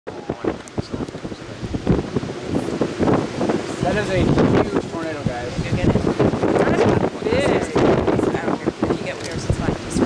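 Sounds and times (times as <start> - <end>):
gusty wind buffeting microphone: 0.1 - 10.0.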